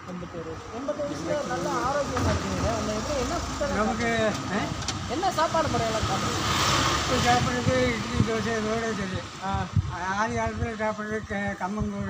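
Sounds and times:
men talking: 0.0s - 12.0s
street traffic: 0.0s - 12.0s.

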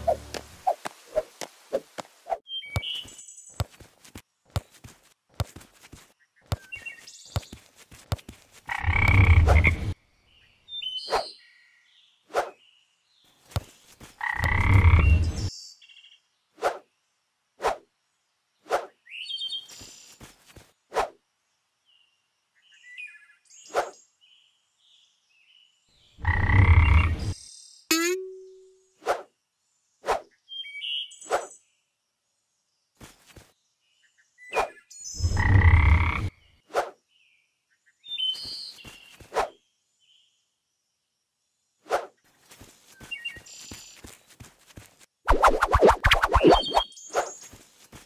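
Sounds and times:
low rasping croak: 8.7s - 9.7s, 26.2s - 27.1s, 35.4s - 36.3s
faint twinkly chirp: 27.4s - 29.0s
high whistle-like squeaks: 45.3s - 47.3s
quick falling zip: 45.3s - 47.3s.

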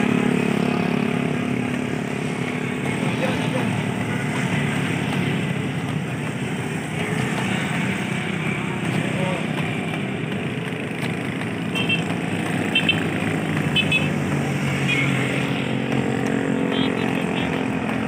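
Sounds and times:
passing cars and motorcycles: 0.0s - 18.0s.

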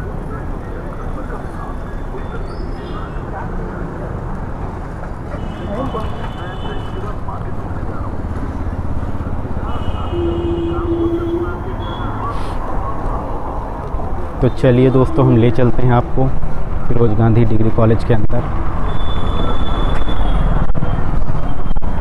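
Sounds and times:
background voices: 0.0s - 18.3s
passing motor vehicles rumble: 0.0s - 22.0s.

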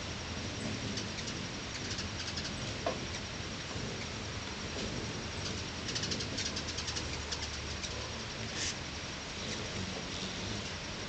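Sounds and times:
hummingbirds chittering: 0.0s - 11.0s.

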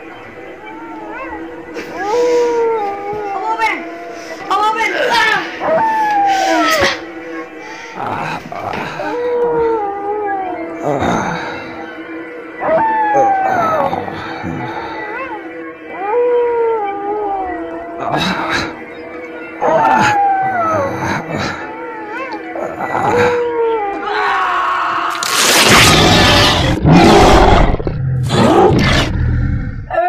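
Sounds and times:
steady background tone: 0.0s - 24.1s
wolf-like howl: 5.6s - 30.0s.

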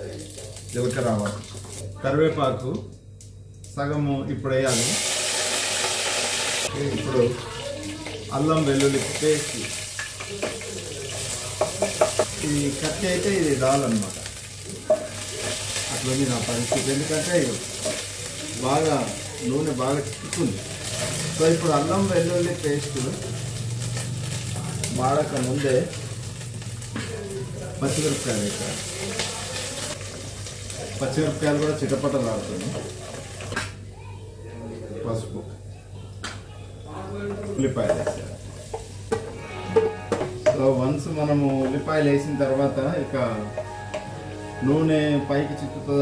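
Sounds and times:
food sizzling in hot oil: 4.7s - 33.6s, 37.6s - 39.4s
wooden spatula knocking pot: 11.6s - 12.4s.

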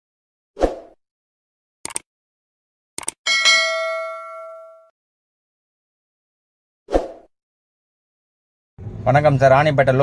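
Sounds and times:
quick clicks: 1.8s - 2.1s, 3.0s - 3.2s
bright bell ding: 3.3s - 4.9s.

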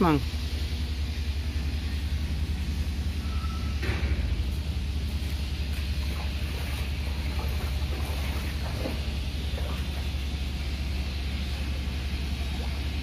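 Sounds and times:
engine rumbling: 0.0s - 13.0s.

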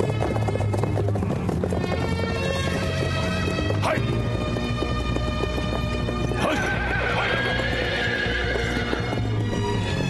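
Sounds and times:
background music: 0.0s - 10.0s
hoofbeats on hard ground: 0.0s - 10.0s
horse whinnying: 6.2s - 9.4s.

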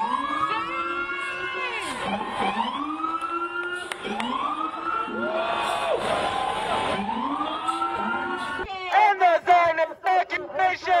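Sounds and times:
siren wailing: 0.0s - 8.7s.

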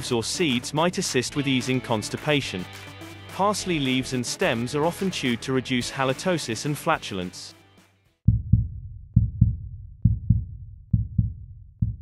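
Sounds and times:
deep drum thumps: 8.3s - 12.0s.

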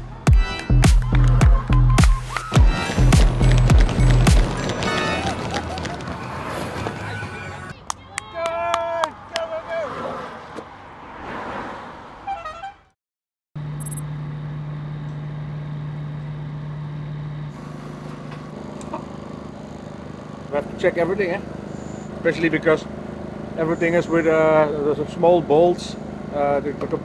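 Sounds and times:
street ambience: 0.0s - 13.0s, 13.6s - 27.0s
sharp claps: 0.6s - 5.8s
spectators cheering and calling out: 1.0s - 10.0s.

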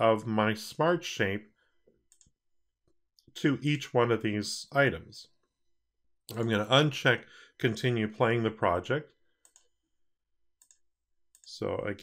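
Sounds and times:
computer mouse clicks: 2.1s - 2.4s, 9.4s - 9.7s, 10.6s - 11.6s.

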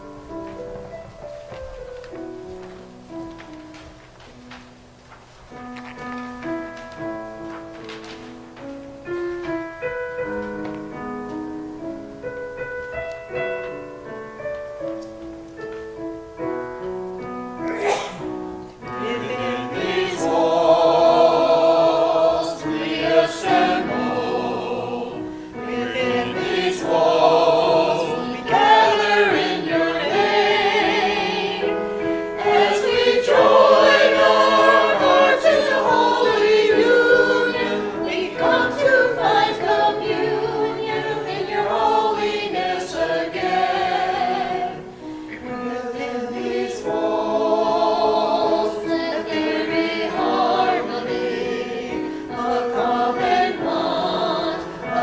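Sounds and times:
keyboard accompaniment: 0.0s - 55.0s
church choir singing: 17.6s - 55.0s.

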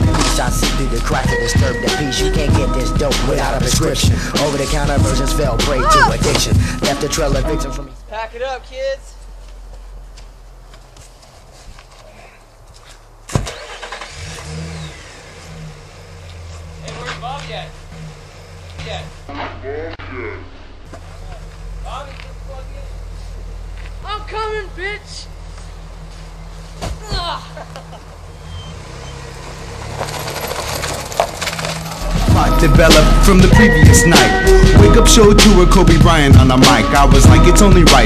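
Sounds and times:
truck engine starting and idling: 0.0s - 9.3s, 12.9s - 38.0s
tyre chains rattling: 28.5s - 32.7s.

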